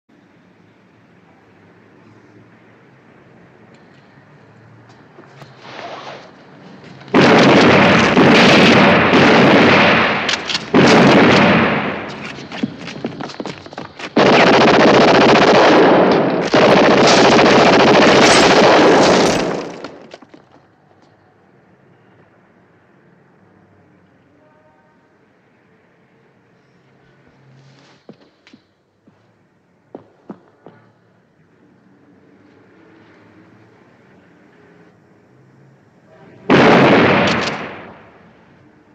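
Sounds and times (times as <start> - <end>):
heavy gunfire: 7.1 - 13.2, 14.1 - 20.1, 36.5 - 38.3.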